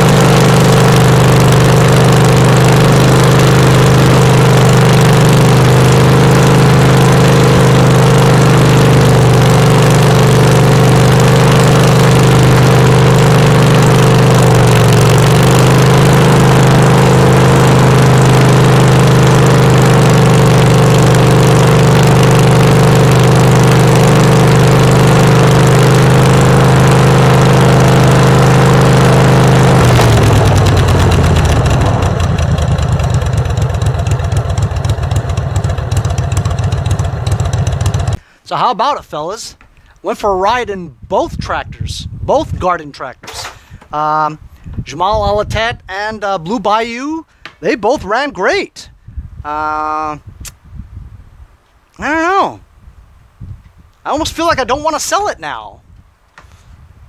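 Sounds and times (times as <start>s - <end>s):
tractor engine running: 0.0s - 38.2s.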